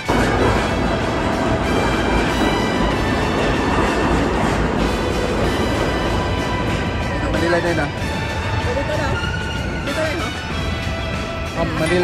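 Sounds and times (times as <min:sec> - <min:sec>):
faint background music: 0:00.0 - 0:12.0
subway train rumbling: 0:00.0 - 0:12.0.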